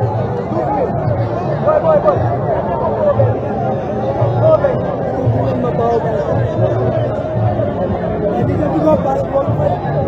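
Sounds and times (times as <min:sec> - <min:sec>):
crowd shouting and chanting: 0:00.0 - 0:10.0.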